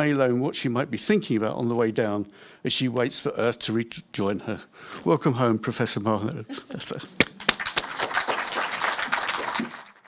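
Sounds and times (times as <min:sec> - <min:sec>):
audience applauding: 0:07.2 - 0:10.0.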